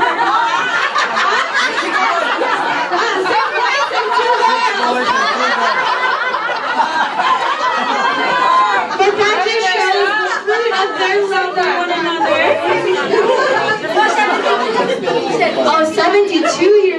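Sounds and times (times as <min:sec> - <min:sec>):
crowd chatter: 0:00.0 - 0:16.9.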